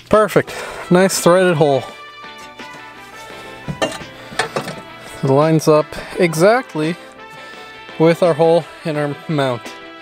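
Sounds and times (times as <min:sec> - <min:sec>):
background music: 0:00.0 - 0:10.0
metal clinks and knocks: 0:03.7 - 0:04.9.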